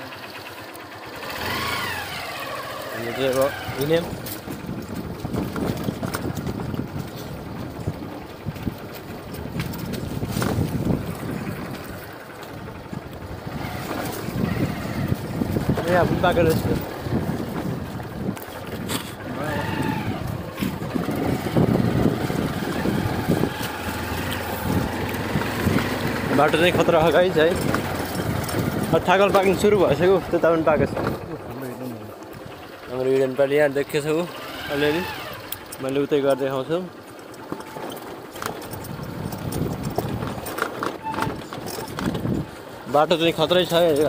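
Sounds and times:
motorcycle engine rumble: 0.0 - 44.0
tyres crunching on gravel: 1.2 - 44.0.

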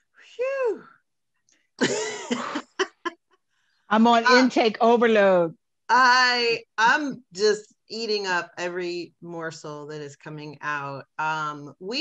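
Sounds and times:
woman laughing: 1.8 - 3.1.

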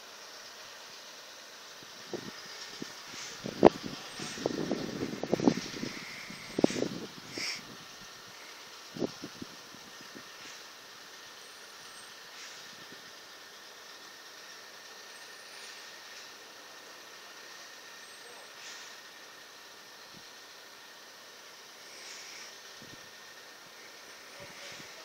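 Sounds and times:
distant traffic hiss: 0.0 - 25.0.

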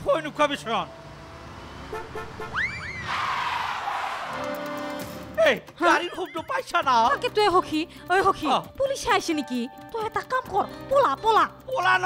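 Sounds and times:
rising whistle-like slide: 1.9 - 4.2.

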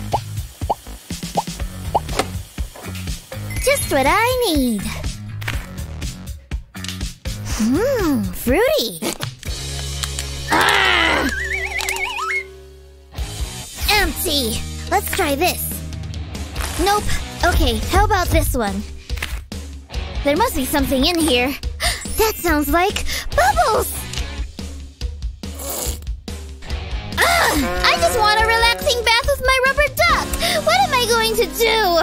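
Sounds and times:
background music: 0.0 - 32.0
cartoon squeal falling in pitch: 10.5 - 12.5.

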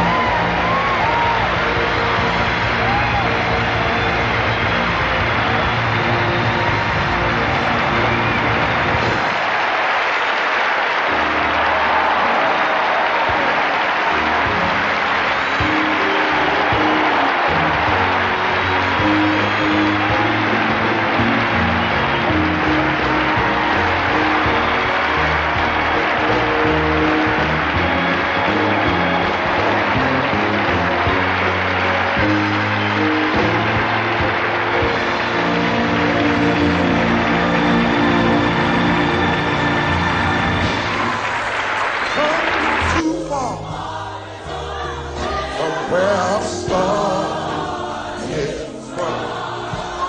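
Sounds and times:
congregation clapping and shouting: 0.0 - 50.0
live church music: 0.0 - 50.0.

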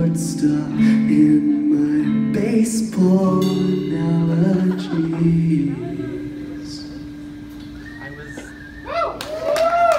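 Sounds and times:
electric guitar note ringing: 0.0 - 8.8
audience whooping: 7.8 - 9.9.

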